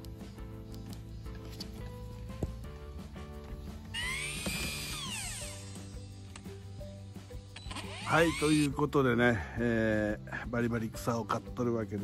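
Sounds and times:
background music: 0.0 - 12.0
string trimmer motor whine: 3.9 - 6.0, 7.8 - 8.7.

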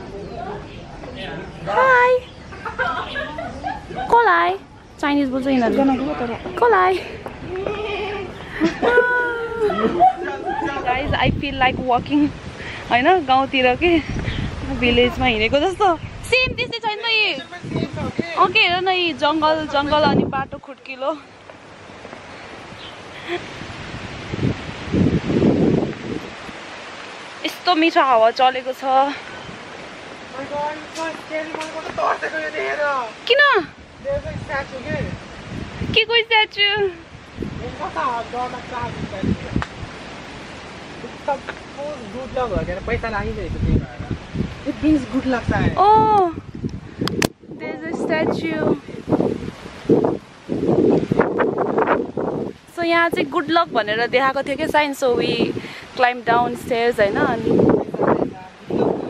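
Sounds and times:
low wind buffeting rumble: 0.0 - 59.0
wind rustling on microphone: 0.0 - 59.0.

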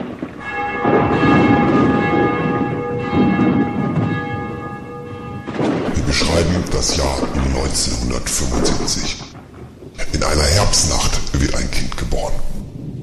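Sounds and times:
low rumbling noise: 0.0 - 13.0
sustained bell-like chime: 0.4 - 5.7.

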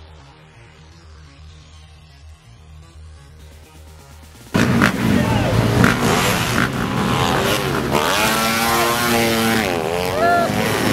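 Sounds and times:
dirt bike engines revving: 3.4 - 10.9.

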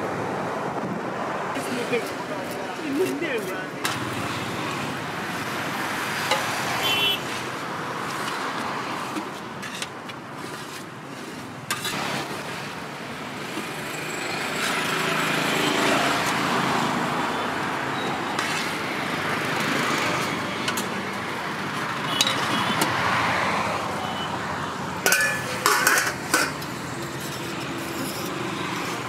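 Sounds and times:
road traffic passing: 0.0 - 29.0.

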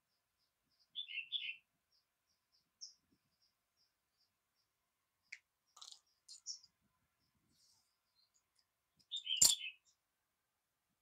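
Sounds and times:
scissors clattering on tiled floor: 9.4 - 9.6.

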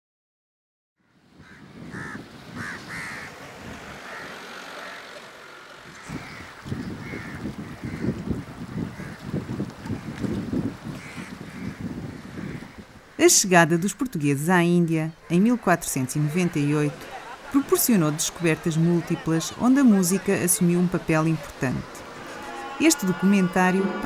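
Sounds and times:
crows cawing: 1.4 - 3.4, 4.0 - 8.2, 11.0 - 13.2.

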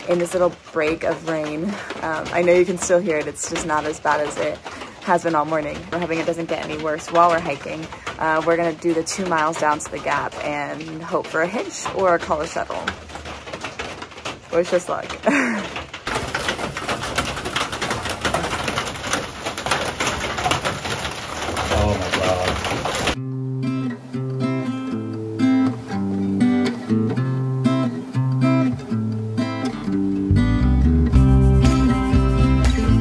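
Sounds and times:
light rain pattering and dripping: 0.0 - 30.4
acoustic guitar music: 21.5 - 33.0.

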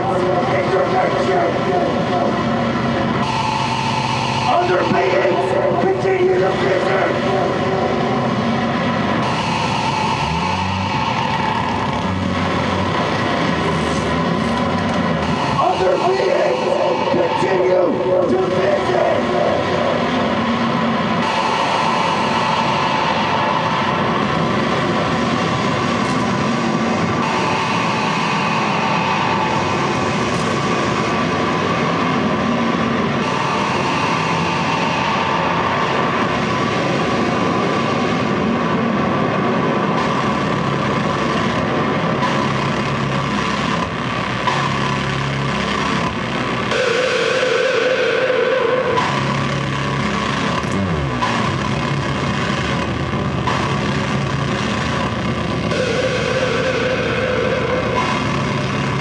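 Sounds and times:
distorted noise wall with drones: 0.0 - 59.0.

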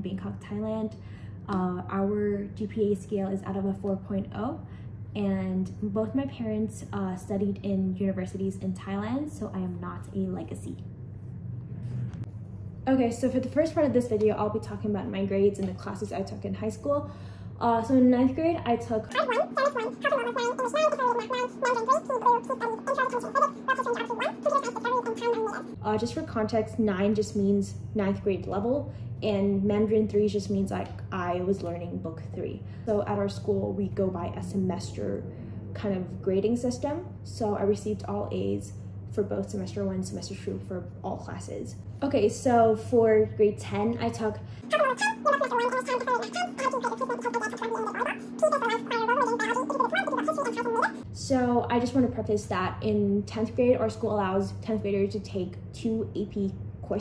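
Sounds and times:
steady low hum: 0.0 - 57.0
steady low tone: 9.3 - 15.1
sped-up high-pitched voice chattering: 19.1 - 25.8, 44.7 - 51.0.

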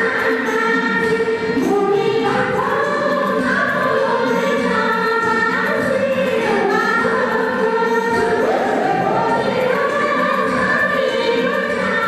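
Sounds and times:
women singing folk song together: 0.0 - 12.0.

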